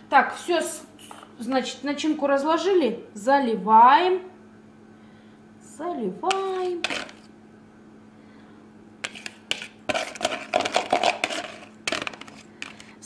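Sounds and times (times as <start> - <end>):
whisk scraping plastic bowl: 6.8 - 7.3, 9.0 - 12.8.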